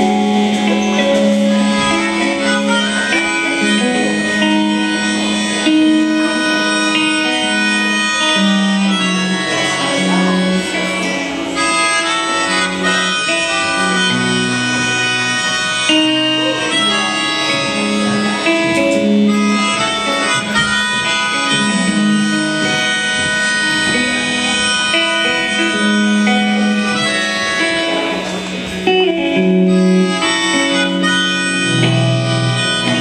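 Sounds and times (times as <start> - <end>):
electric guitars: 0.0 - 33.0
harmonica long held notes: 0.0 - 33.0.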